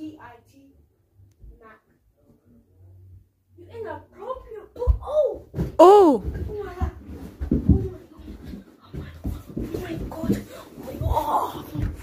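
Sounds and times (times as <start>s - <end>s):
footsteps on carpeted stairs: 4.4s - 12.0s.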